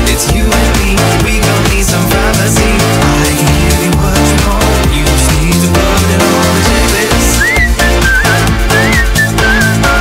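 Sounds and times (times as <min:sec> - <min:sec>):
house dance music: 0:00.0 - 0:10.0
whistle-like lead melody: 0:06.8 - 0:10.0.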